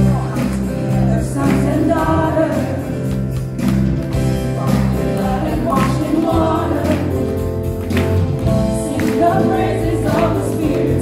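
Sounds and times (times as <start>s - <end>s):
women singing in harmony: 0.0s - 3.1s, 4.6s - 7.4s, 8.7s - 11.0s.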